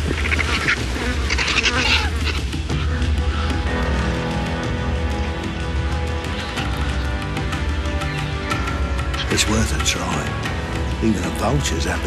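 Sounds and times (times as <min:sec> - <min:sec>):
vultures hissing squawks: 0:00.0 - 0:03.6, 0:05.0 - 0:09.4.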